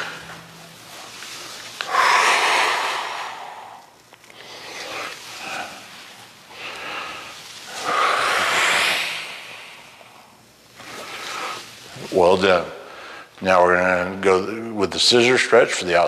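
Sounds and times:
man breathing heavily: 1.8 - 10.4.

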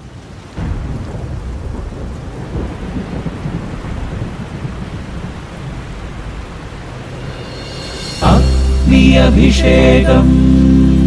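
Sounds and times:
steady rain: 0.0 - 11.0
low rumble of thunder: 0.4 - 8.1.

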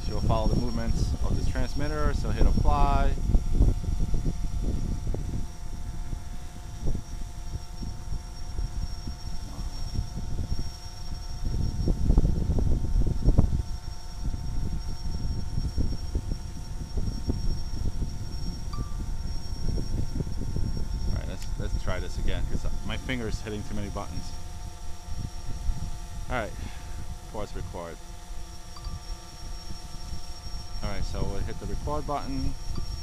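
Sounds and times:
drone propellers humming: 0.0 - 33.0
wind buffeting microphone: 0.0 - 33.0.

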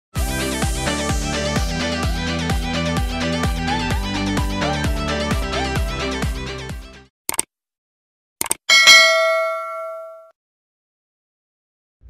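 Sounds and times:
quick clicks: 7.3 - 7.5, 8.4 - 8.7
bright bell ding: 8.7 - 10.3.

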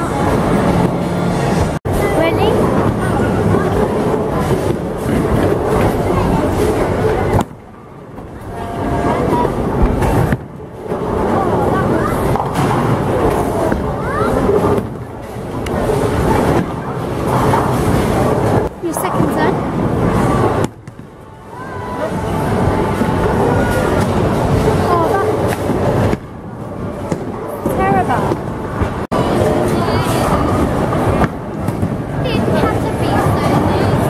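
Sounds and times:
bowling balls rolling: 0.0 - 34.0.

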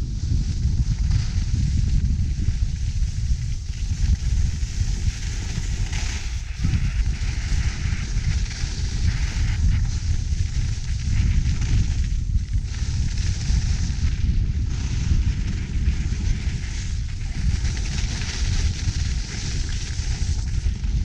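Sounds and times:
wind buffeting microphone: 0.0 - 21.0
skis sliding on snow: 0.2 - 21.0.

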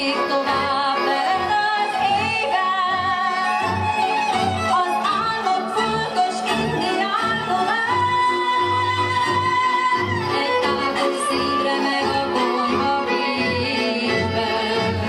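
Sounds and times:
folk band playing: 0.0 - 15.0
woman singing: 0.0 - 15.0.

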